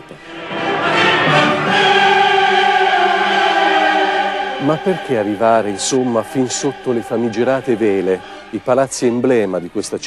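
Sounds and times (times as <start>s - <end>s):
choir holding a chord: 0.0s - 9.3s.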